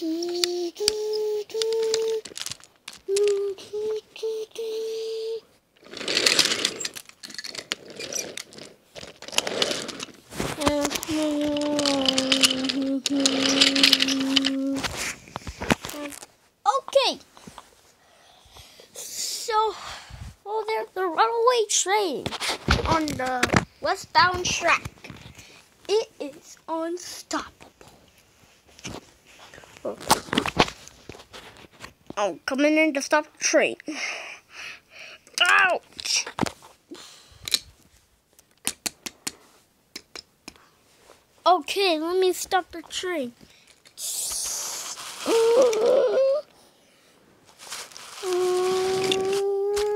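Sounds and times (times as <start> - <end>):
person humming a steady note: 0.0 - 2.2
toy train cars rattling on track: 5.8 - 14.8.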